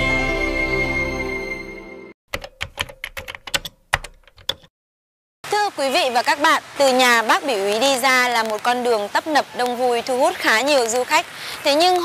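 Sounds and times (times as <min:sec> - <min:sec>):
keyboard key clicks: 0:02.3 - 0:04.7.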